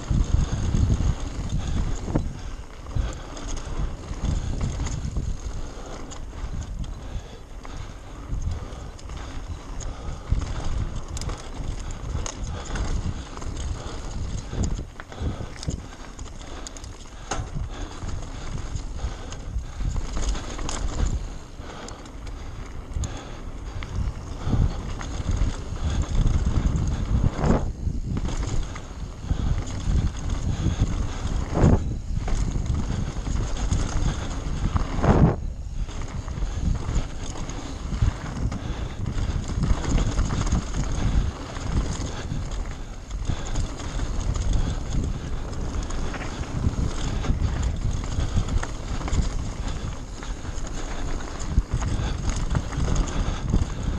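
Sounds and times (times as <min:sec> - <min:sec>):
bike rattling and knocking: 0:00.0 - 0:53.9
wind buffeting microphone: 0:00.0 - 0:53.9.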